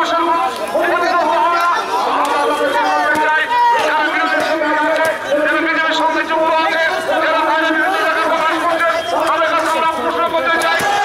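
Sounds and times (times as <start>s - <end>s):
crowd of men talking: 0.0s - 11.0s.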